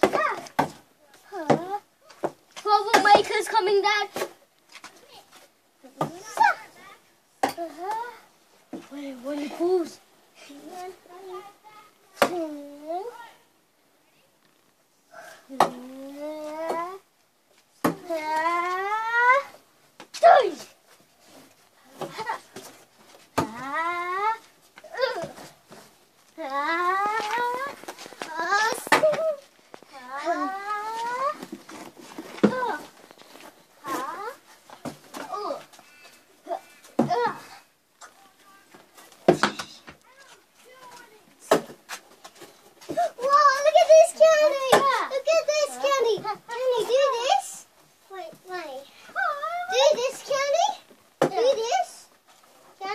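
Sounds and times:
child shouting: 20.2 - 20.6, 26.4 - 29.4, 43.2 - 47.4, 49.2 - 50.7
children crying and squealing: 26.4 - 31.4
thumps on cardboard boxes: 30.9 - 35.6, 36.9 - 37.4, 38.7 - 40.0, 40.8 - 43.1, 51.2 - 51.7.

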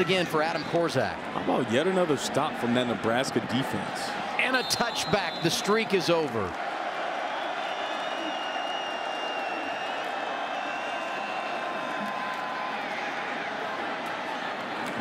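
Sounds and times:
stadium crowd voices: 0.0 - 15.0.

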